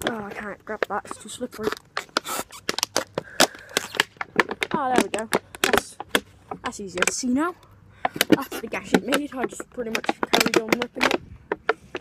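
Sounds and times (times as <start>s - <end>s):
plastic bottle crinkling: 0.0s - 7.3s, 8.0s - 12.0s.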